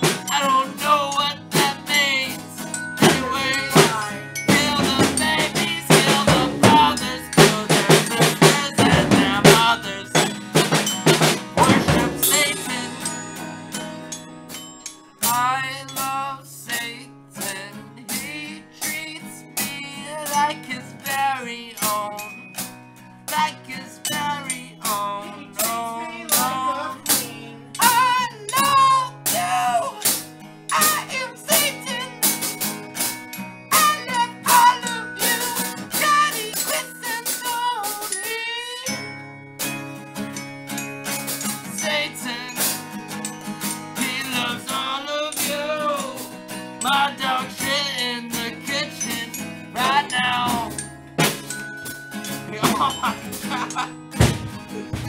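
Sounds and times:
man singing into a microphone: 0.0s - 10.5s, 11.6s - 13.2s, 15.2s - 22.4s, 23.3s - 32.4s, 33.7s - 39.0s, 41.7s - 42.8s, 44.0s - 50.9s, 52.5s - 53.9s
drums: 0.0s - 16.2s, 17.4s - 38.3s, 40.7s - 41.9s, 42.5s - 55.0s
guitar: 0.0s - 55.0s
xylophone: 0.0s - 55.0s.

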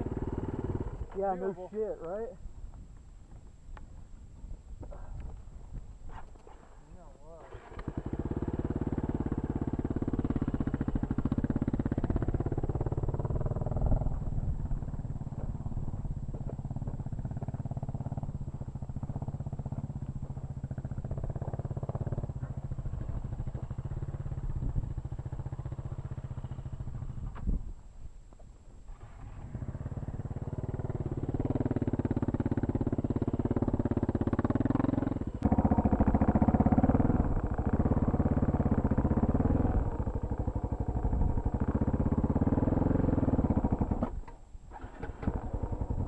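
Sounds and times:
motorcycle engine accelerating: 0.0s - 2.2s, 7.3s - 27.6s, 28.9s - 46.0s.

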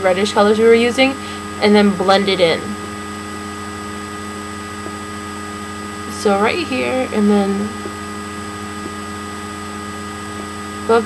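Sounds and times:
person speaking: 0.0s - 2.9s, 6.1s - 7.9s
constant hiss: 0.0s - 11.0s
electrical hum: 0.0s - 11.0s.

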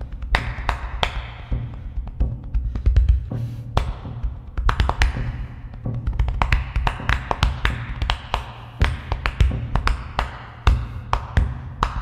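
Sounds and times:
hands slapping chest: 0.0s - 12.0s.

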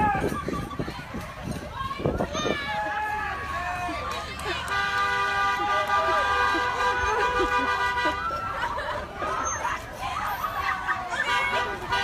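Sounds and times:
voices and shouts: 0.0s - 12.0s.

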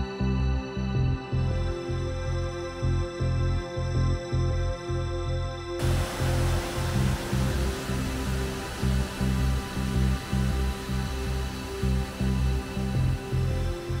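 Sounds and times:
background music with beat: 0.0s - 14.0s
river water rushing: 5.8s - 14.0s.

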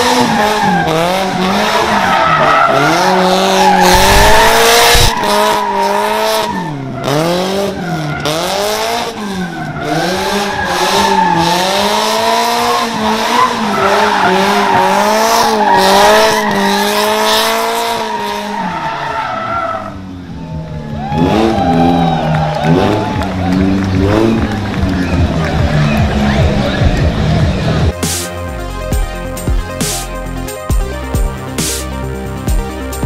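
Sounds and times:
tyres skidding and squealing: 0.0s - 28.0s
car engine revving: 0.0s - 33.0s.

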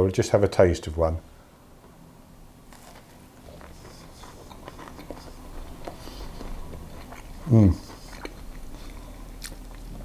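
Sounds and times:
person chewing crunchy cake: 2.7s - 10.0s.

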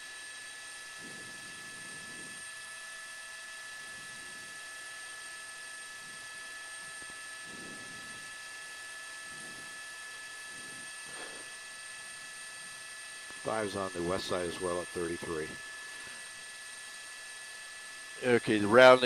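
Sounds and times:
faint high whines: 0.0s - 19.0s
helicopter cabin hiss: 13.4s - 16.3s.

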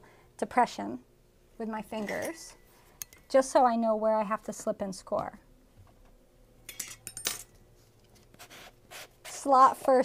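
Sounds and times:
pottery tool scraping: 1.9s - 3.0s
pottery tools clinking: 1.9s - 3.4s, 6.6s - 7.6s.

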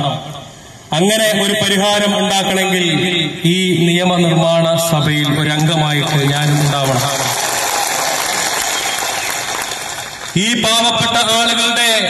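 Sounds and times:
crowd applauding: 5.9s - 10.4s.

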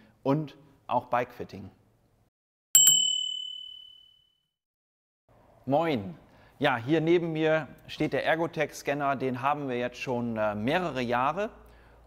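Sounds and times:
bicycle bell ringing: 2.8s - 4.4s.

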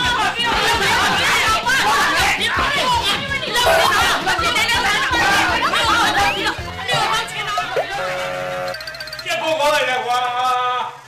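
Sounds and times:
people shouting and arguing: 0.0s - 7.9s.

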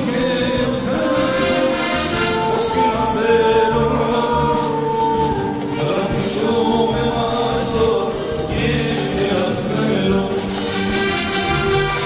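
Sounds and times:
band with bass and cymbals: 0.0s - 12.0s
man singing: 0.0s - 12.0s.

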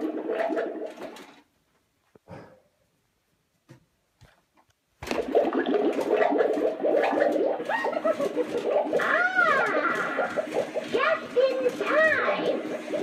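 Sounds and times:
recorded witch voice: 10.9s - 12.7s.

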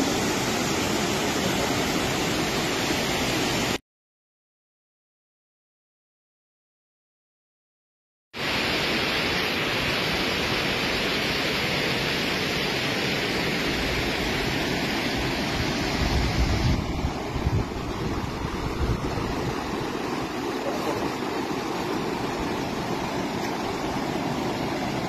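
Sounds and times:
floodwater rushing: 0.0s - 3.8s, 8.4s - 25.0s.

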